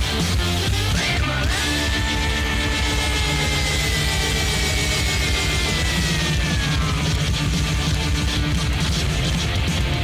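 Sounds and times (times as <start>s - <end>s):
loud rock music: 0.0s - 10.0s.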